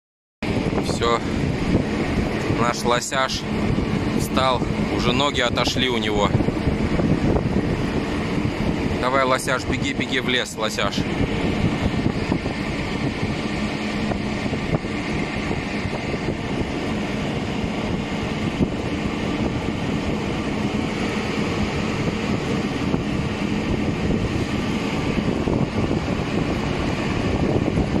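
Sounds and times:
engine running: 0:00.4 - 0:28.0
wind on microphone: 0:00.4 - 0:28.0.

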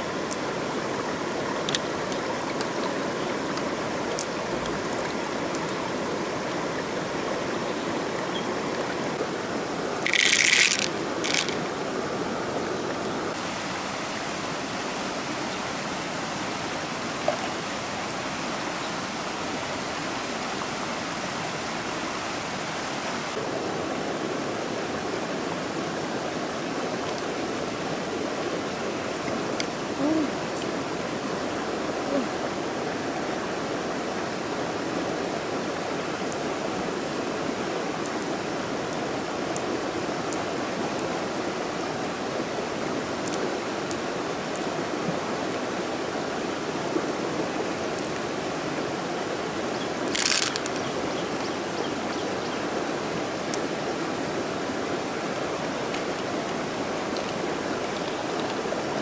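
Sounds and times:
river running over rocks: 0:00.0 - 0:59.0.

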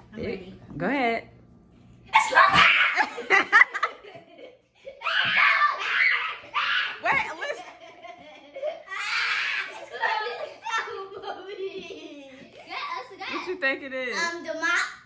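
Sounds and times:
girls laughing and giggling: 0:02.2 - 0:13.9.

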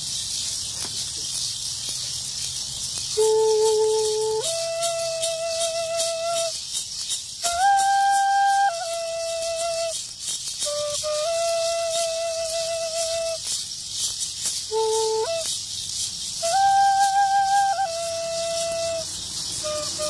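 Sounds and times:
maracas shaking: 0:00.0 - 0:20.0
flute playing slow melody: 0:03.2 - 0:06.6, 0:07.4 - 0:13.5, 0:14.7 - 0:15.6, 0:16.4 - 0:20.0.

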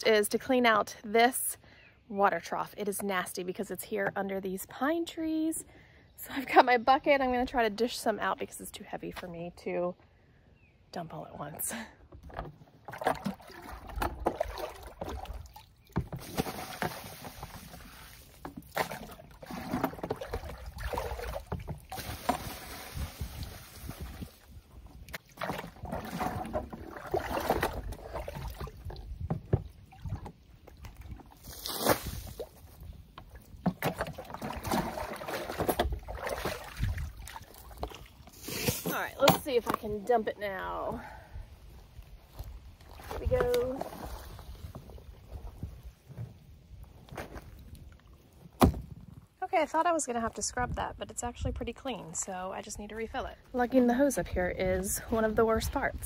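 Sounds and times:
water sloshing and splashing: 0:12.1 - 0:40.6, 0:41.8 - 0:49.4.

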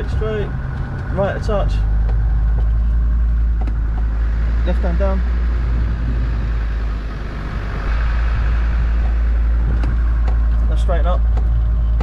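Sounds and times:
car engine running from inside: 0:00.0 - 0:12.0.

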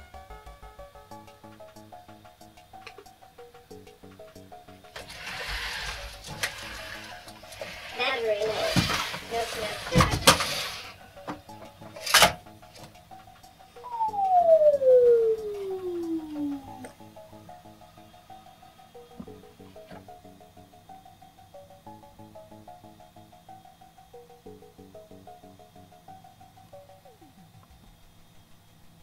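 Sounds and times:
soft background music: 0:00.0 - 0:29.0
falling electronic tone: 0:13.7 - 0:20.8.

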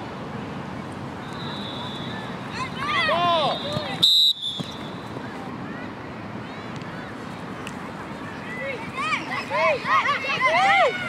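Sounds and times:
loud whistle blast: 0:01.2 - 0:02.2, 0:03.5 - 0:04.8
children shouting: 0:08.5 - 0:11.0.

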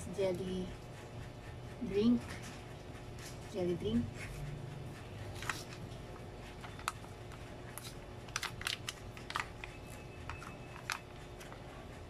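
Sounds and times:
foil pouches crinkling: 0:07.8 - 0:11.1.

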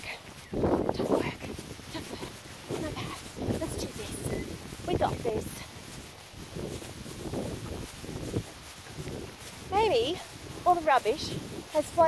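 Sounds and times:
rustling: 0:00.0 - 0:12.0
wind noise on microphone: 0:00.0 - 0:12.0.

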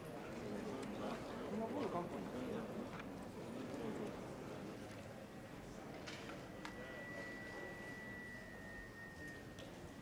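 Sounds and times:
murmur of many people talking: 0:00.0 - 0:10.0.

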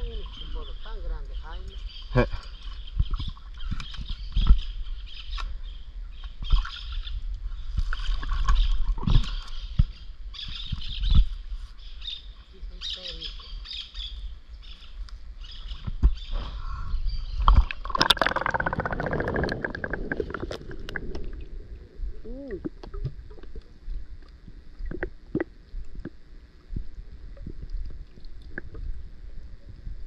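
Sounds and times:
birds chirping: 0:00.0 - 0:07.2, 0:08.0 - 0:20.6
underwater bubbling: 0:17.0 - 0:30.0
water splash: 0:17.5 - 0:21.7.

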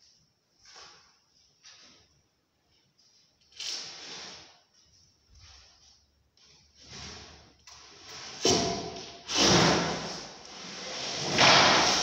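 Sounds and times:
rough scraping and sliding: 0:09.3 - 0:12.0.

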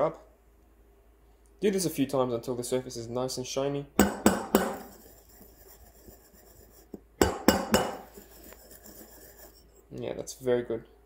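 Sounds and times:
milk jug knocking on counter: 0:07.2 - 0:08.0
milk swirling: 0:07.9 - 0:09.8.

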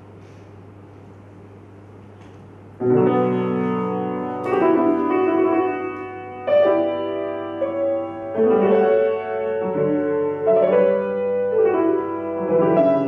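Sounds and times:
solo grand piano: 0:02.4 - 0:13.0.

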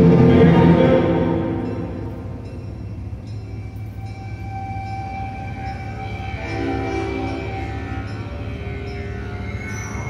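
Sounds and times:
low drone: 0:00.0 - 0:10.0
lower sustained tones: 0:00.0 - 0:10.0
long held high note: 0:03.6 - 0:10.0.

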